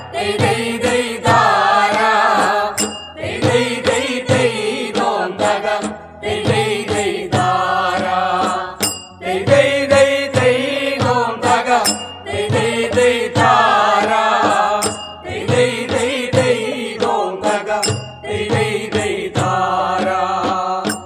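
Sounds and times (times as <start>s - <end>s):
folk singing: 0.0s - 21.0s
steady percussion beat: 0.0s - 21.0s.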